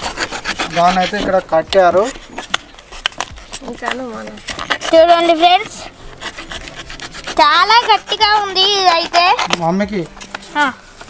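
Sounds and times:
blade cutting plastic strap: 0:02.1 - 0:10.4.

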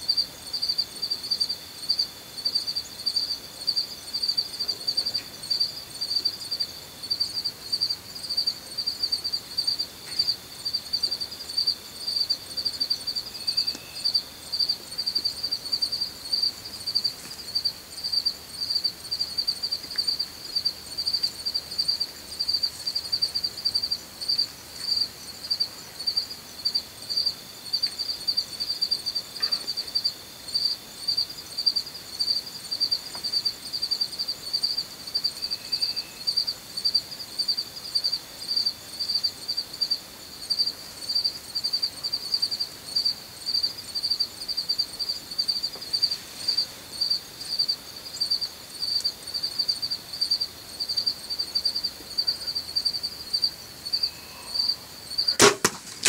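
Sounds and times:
faint continuous insect trill: 0:00.0 - 0:56.0
insects pulsing chorus: 0:00.0 - 0:56.0.

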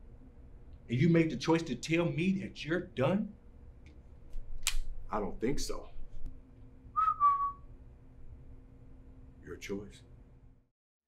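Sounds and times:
high whistle-like tone: 0:06.9 - 0:07.7.

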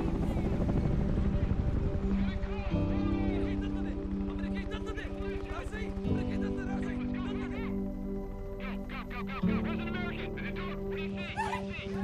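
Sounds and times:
helicopter rotors chopping: 0:00.0 - 0:07.4.

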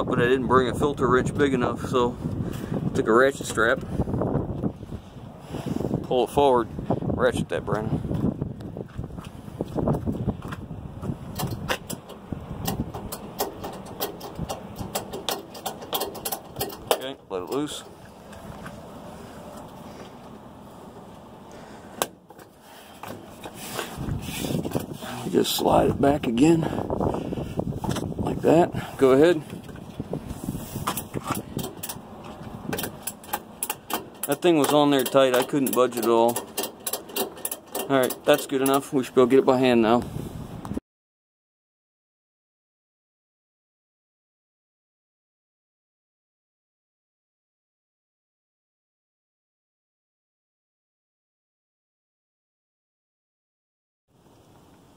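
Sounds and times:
rustling handling noise: 0:22.2 - 0:25.6
ratchet strap clicking: 0:32.7 - 0:38.8.

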